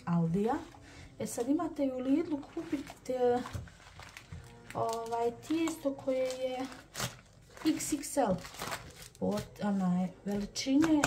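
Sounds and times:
baking paper rustling: 0.2 - 11.0
woman's voice holding sounds: 4.7 - 6.8, 9.2 - 11.0.

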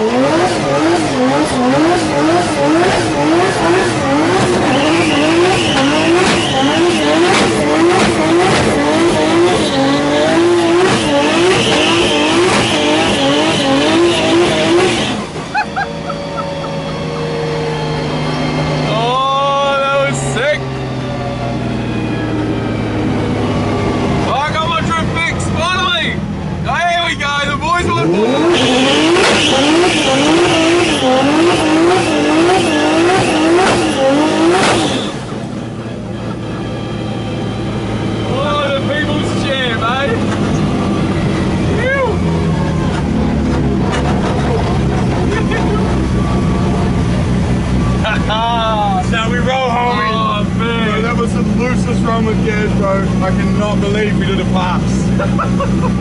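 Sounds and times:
car engine revving: 0.0 - 56.0
tyre squeal: 3.4 - 7.6, 9.2 - 19.0, 28.3 - 35.4.

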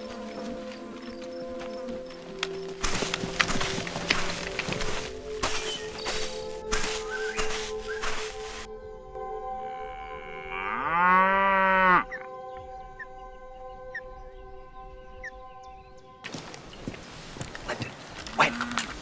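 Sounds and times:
rustling crunching noise: 0.0 - 8.7, 16.2 - 19.0
background music tones: 0.0 - 19.0
cow mooing: 9.6 - 12.3, 18.4 - 19.0.

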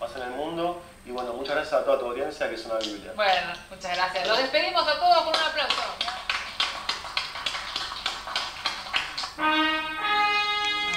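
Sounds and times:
hands clapping steady beat: 2.7 - 4.5, 5.1 - 10.9.

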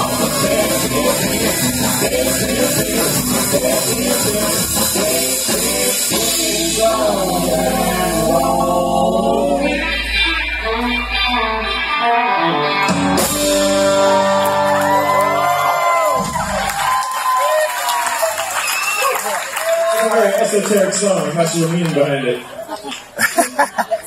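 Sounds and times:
upright bass: 0.0 - 12.0, 12.6 - 16.7
person singing: 0.0 - 16.0
live band playing: 0.0 - 17.0.

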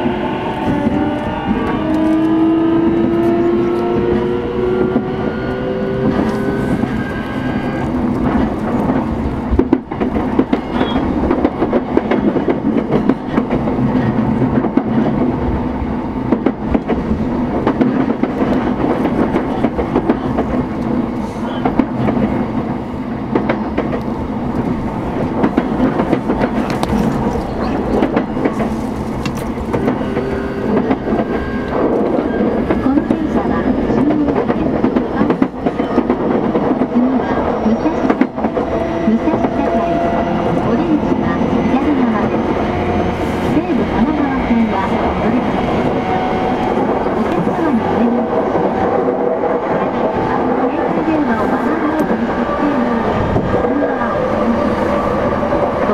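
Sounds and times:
rail clicks: 0.0 - 55.9.

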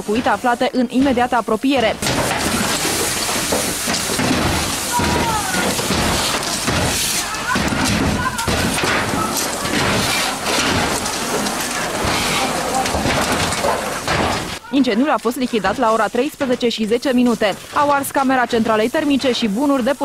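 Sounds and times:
fire hose spraying water: 0.0 - 20.0.

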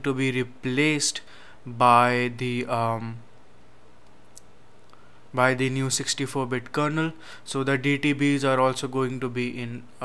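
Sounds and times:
low background hiss: 0.0 - 10.0
faint click: 4.0 - 5.0.

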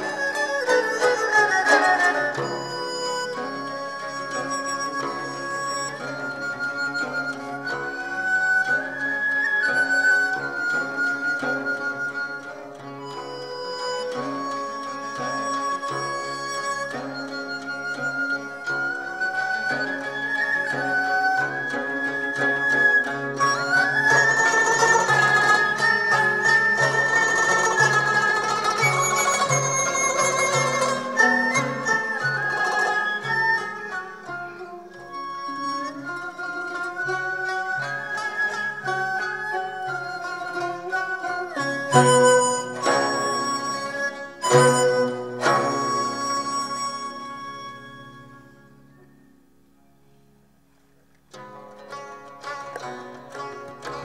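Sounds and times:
bowed erhu: 0.0 - 49.4, 51.3 - 54.0
bamboo flute melody: 0.0 - 49.5
plucked lutes: 0.0 - 50.1, 51.0 - 54.0.

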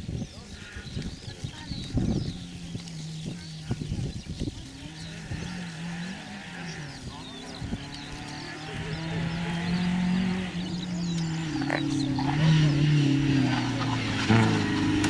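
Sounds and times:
distant rally car engine: 0.0 - 15.0.

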